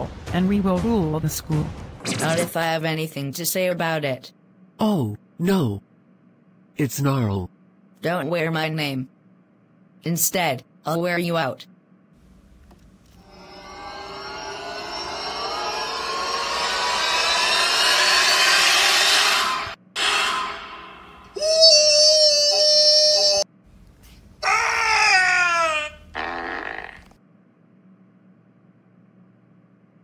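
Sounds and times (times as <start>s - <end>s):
noisy swell: 13.2s - 21.4s
sound sliding down in pitch: 13.2s - 22.6s
loud drawn-out shout: 13.2s - 23.4s
cartoon fart: 26.1s - 27.1s.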